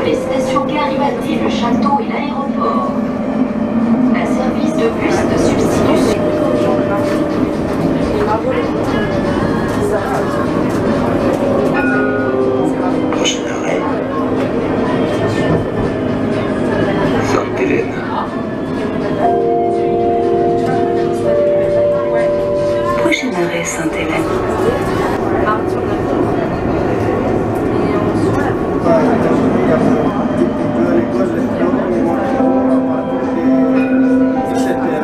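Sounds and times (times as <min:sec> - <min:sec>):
people's voices: 0:00.0 - 0:35.0
tram rolling on track: 0:00.0 - 0:35.0.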